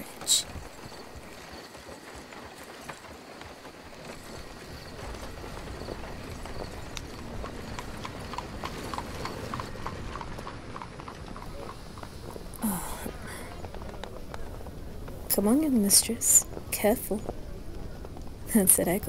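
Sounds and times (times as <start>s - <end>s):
horse hooves clip-clopping: 0.0s - 19.0s.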